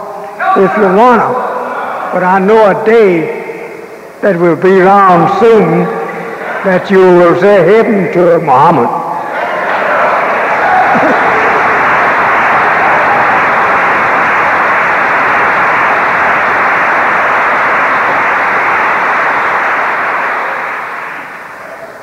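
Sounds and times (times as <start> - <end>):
audience applauding: 9.2 - 22.0.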